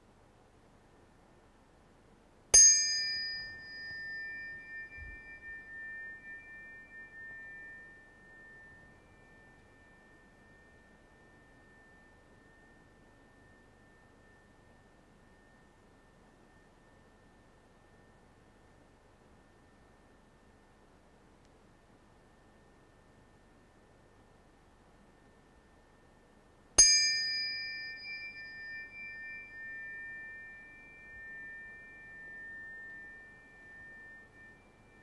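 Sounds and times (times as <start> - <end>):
tuning forks clinking: 2.6 - 18.2, 26.8 - 35.0
tuning forks ringing tones: 2.6 - 20.8, 25.0 - 35.0.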